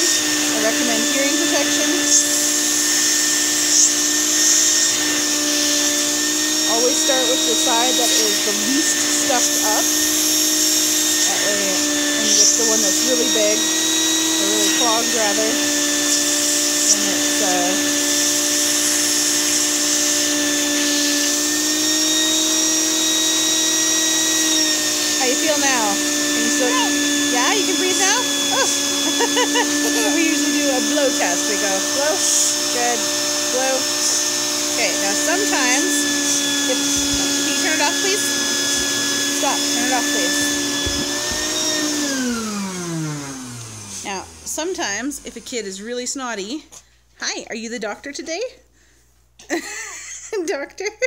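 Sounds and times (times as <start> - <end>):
person talking: 0.0 - 2.4, 6.6 - 9.9, 11.2 - 16.0, 16.8 - 18.1, 25.0 - 42.0
shop vac running with whine: 0.0 - 46.7.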